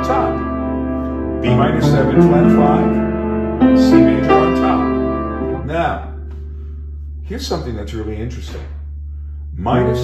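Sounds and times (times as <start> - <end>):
upright piano chord: 0.0 - 6.8.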